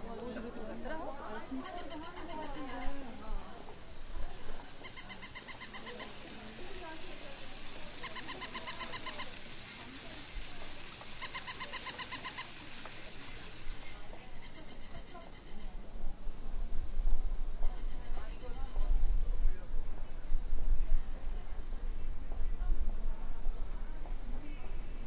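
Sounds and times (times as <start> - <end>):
faint street voices: 0.0 - 25.0
toy electronic chirping trill: 4.8 - 6.4, 7.9 - 9.7, 11.1 - 12.6.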